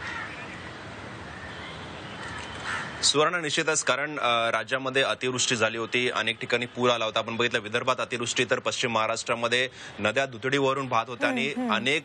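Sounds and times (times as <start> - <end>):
steady background hiss: 9.7 - 12.0.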